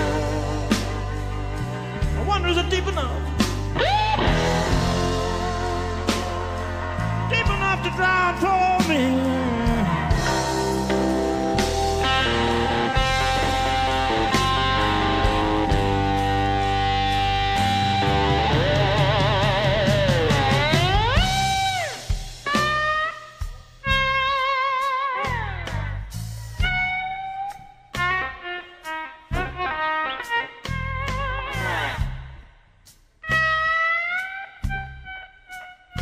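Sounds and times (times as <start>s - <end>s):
blues band playing: 0.0s - 36.0s
electric slide guitar solo: 3.6s - 8.1s, 9.5s - 26.0s, 26.6s - 32.2s, 33.3s - 36.0s.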